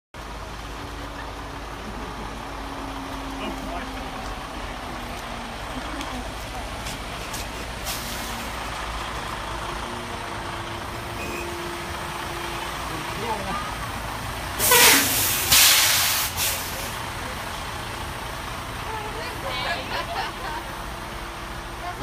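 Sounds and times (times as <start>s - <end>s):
diesel truck engine running: 0.1s - 22.0s
air hiss: 14.6s - 16.8s.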